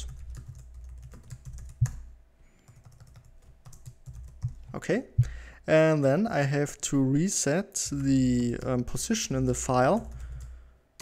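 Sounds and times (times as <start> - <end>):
typing on computer keyboard: 0.0 - 2.0, 2.6 - 4.7, 9.9 - 10.5
steady low hum: 0.0 - 11.0.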